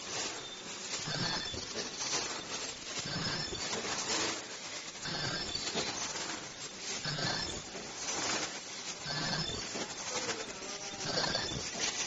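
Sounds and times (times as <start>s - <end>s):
repeating mechanical cycle: 0.2s - 12.0s.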